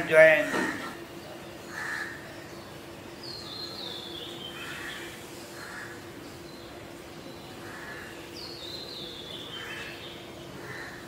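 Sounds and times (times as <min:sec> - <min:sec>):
crow caws: 0:01.7 - 0:02.2, 0:04.6 - 0:06.0, 0:07.6 - 0:08.2, 0:10.6 - 0:11.0.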